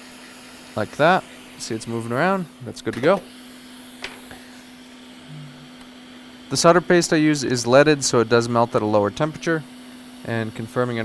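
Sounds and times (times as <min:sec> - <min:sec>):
hot air blower hissing: 0:00.0 - 0:11.0.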